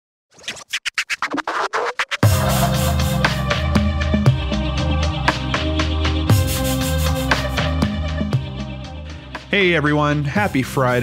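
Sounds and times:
record scratching: 0:00.3 - 0:03.2.

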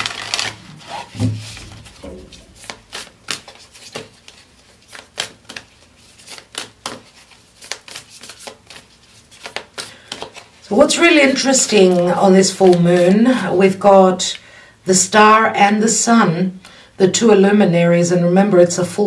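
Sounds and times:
cards shuffled by hand: 0:00.0 - 0:10.6.

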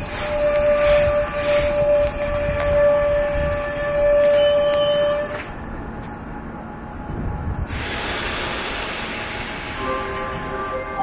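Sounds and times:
rolling carriages rumbling: 0:00.0 - 0:11.0.

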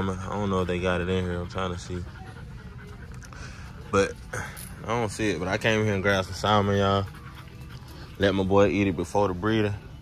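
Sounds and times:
dog panting: 0:00.0 - 0:10.0.

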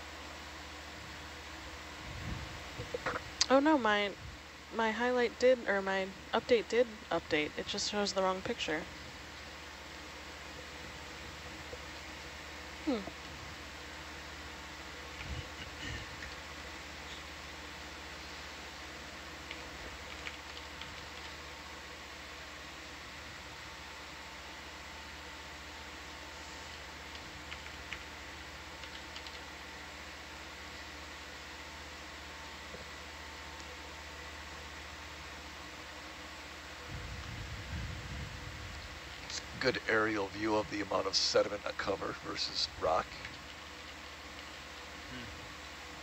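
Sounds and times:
electronic equipment hum: 0:00.0 - 0:46.0
faint clicks: 0:28.8 - 0:29.4.

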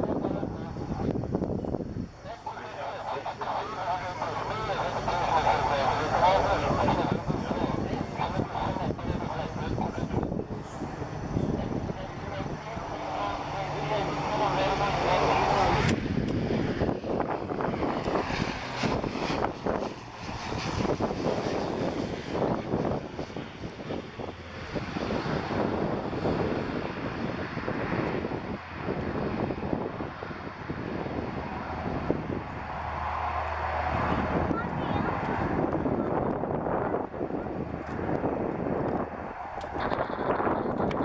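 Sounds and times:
turboprop plane landing: 0:00.0 - 0:41.0.

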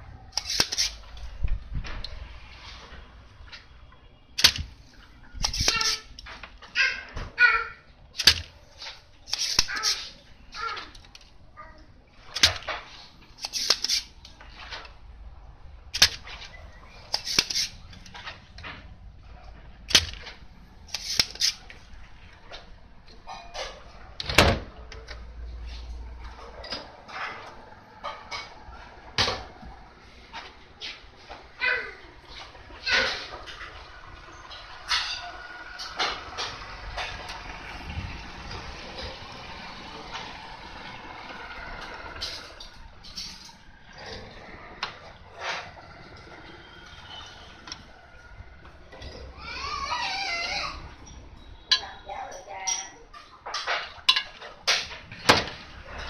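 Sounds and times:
desoldering pump snapping: 0:00.3 - 0:01.0, 0:04.4 - 0:04.8, 0:05.4 - 0:06.3, 0:08.2 - 0:11.3, 0:12.3 - 0:15.0, 0:15.9 - 0:18.7, 0:19.8 - 0:21.8.

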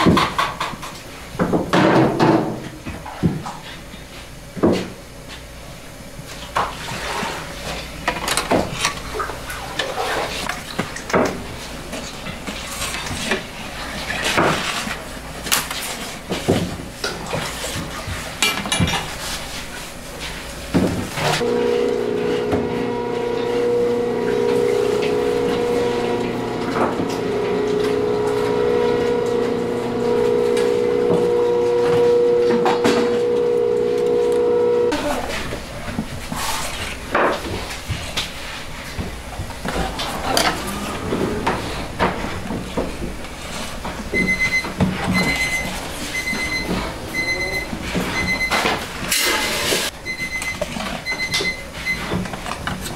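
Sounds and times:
steady machine hum: 0:21.3 - 0:35.9, 0:38.8 - 0:49.1.

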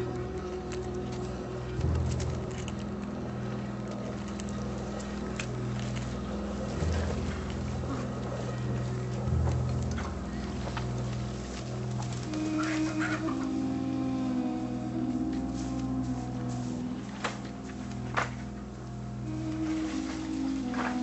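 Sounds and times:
low background music drone: 0:00.0 - 0:21.0.

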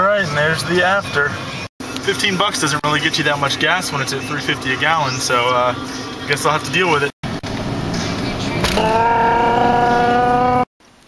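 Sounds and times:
car road and engine noise: 0:00.0 - 0:11.0.

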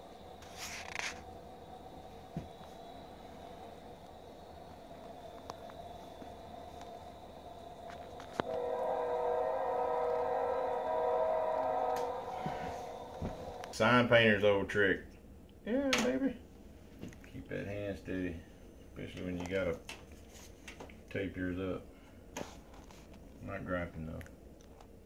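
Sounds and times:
droning hum: 0:00.0 - 0:19.8
scratchy rustle: 0:00.4 - 0:01.2.

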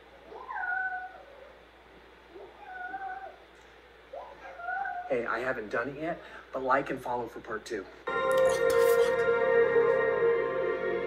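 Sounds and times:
cat meowing: 0:00.3 - 0:01.4, 0:02.4 - 0:03.4.

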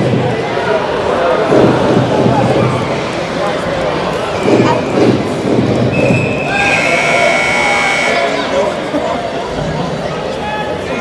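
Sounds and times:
crowd noise: 0:00.0 - 0:11.0
steady high-pitched tone: 0:06.6 - 0:08.5.

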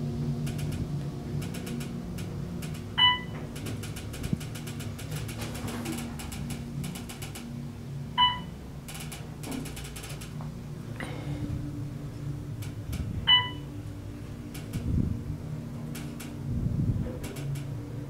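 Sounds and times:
elevator car humming: 0:00.0 - 0:18.0
elevator chimes: 0:01.4 - 0:05.5, 0:08.2 - 0:09.8, 0:13.2 - 0:13.8.

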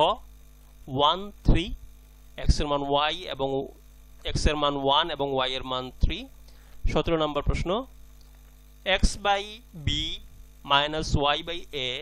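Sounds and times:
man speaking: 0:00.0 - 0:00.3, 0:00.9 - 0:01.8, 0:02.4 - 0:06.3, 0:06.9 - 0:07.9, 0:08.9 - 0:12.0
electrical mains hum: 0:00.0 - 0:12.0.

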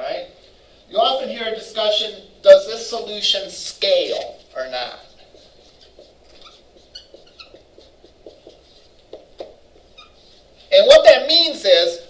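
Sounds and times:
marker squeaking on whiteboard: 0:03.4 - 0:11.1.

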